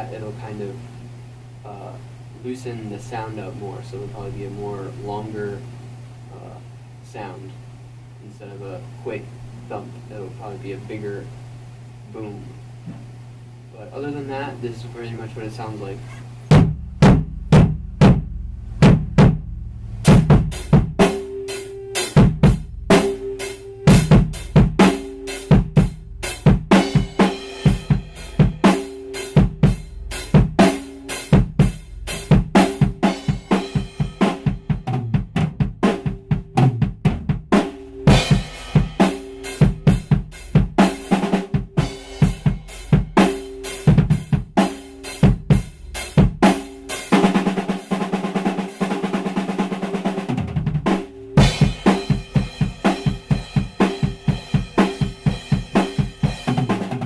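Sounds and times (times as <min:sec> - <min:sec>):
fast drum roll: 0:16.5 - 0:21.3, 0:22.0 - 0:57.0
muffled bass drum kicks: 0:16.5 - 0:21.3, 0:22.1 - 0:48.6, 0:49.2 - 0:57.0
cymbals: 0:22.9 - 0:35.2, 0:37.5 - 0:48.2, 0:50.9 - 0:56.9.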